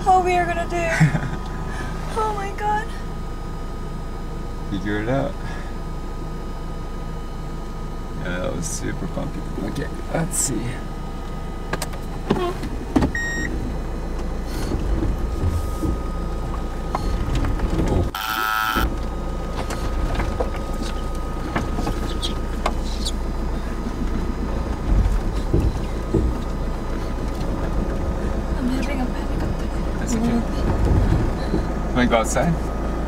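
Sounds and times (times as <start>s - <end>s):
van engine rumble: 0.0s - 33.0s
knocks and rattles: 14.8s - 18.2s, 24.0s - 28.2s, 28.8s - 31.7s
buzzing burst: 18.1s - 18.9s.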